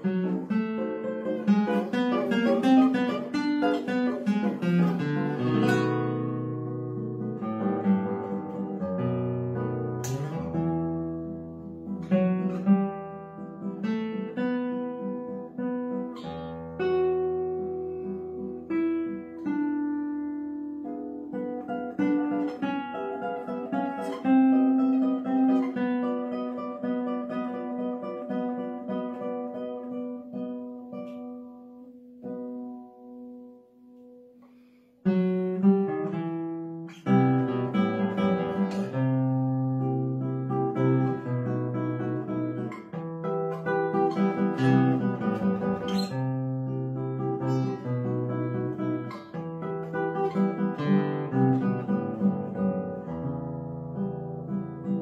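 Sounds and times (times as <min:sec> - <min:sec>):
classical guitar fingerpicked: 0:00.0 - 0:55.0.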